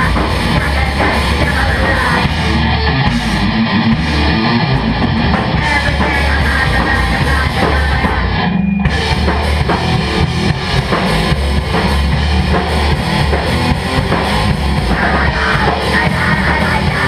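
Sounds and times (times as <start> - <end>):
bass guitar: 0.0 - 17.0
distorted electric guitar: 0.0 - 17.0
drum kit with cymbals: 0.0 - 17.0.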